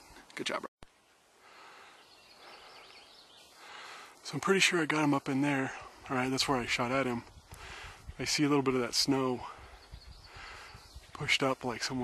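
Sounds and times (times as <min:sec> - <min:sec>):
soft steady hiss: 0:00.0 - 0:12.0
distant bird chirps: 0:00.9 - 0:12.0.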